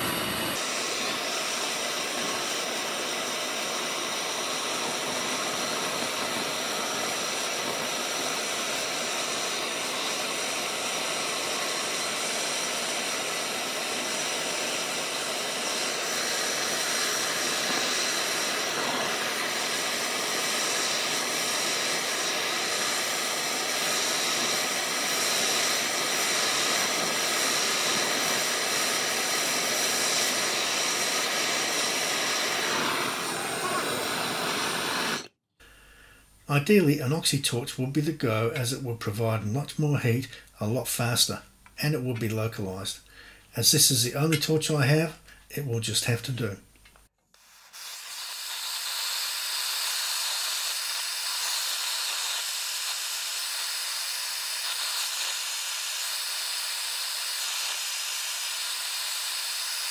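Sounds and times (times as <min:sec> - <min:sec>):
blowtorch hissing: 0:00.0 - 0:35.4, 0:47.3 - 0:59.9.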